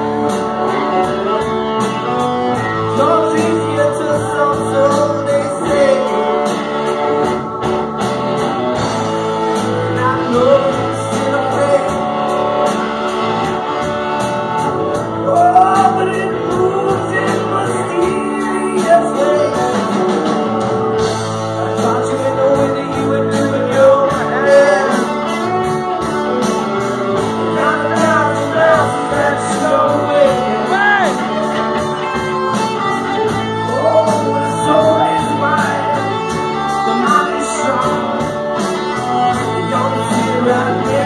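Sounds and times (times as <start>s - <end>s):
person singing: 0.0s - 7.6s, 8.4s - 13.8s, 14.4s - 41.0s
bass guitar: 0.0s - 41.0s
drum kit with cymbal beat: 0.0s - 41.0s
electric guitars: 0.0s - 41.0s
rock band playing: 0.0s - 41.0s.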